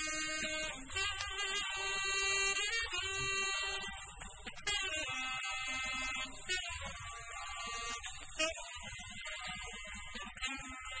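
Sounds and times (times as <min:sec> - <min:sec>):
saxophone long notes: 0:00.0 - 0:11.0.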